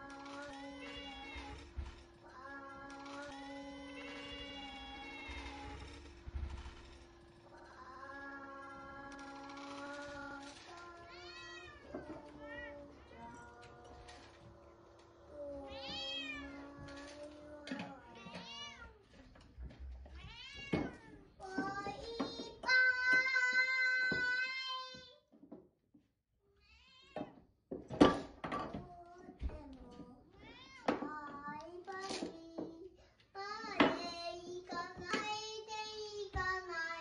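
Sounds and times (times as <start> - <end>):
cats meowing and yowling: 0.2 - 1.6, 10.2 - 14.6, 15.4 - 19.1, 20.1 - 21.3, 30.4 - 31.0.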